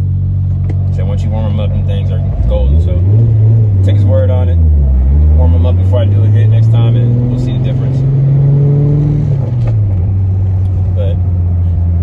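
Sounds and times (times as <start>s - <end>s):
car engine droning: 0.0s - 12.0s.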